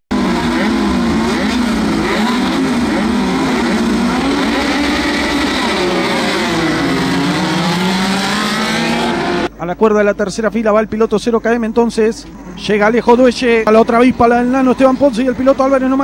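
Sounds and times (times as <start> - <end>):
race car engines revving: 0.1 - 9.6, 12.2 - 16.0.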